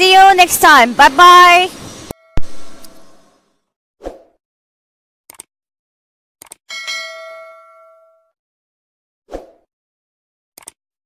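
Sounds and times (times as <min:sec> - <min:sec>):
notification bell chime: 0:06.7 - 0:08.3.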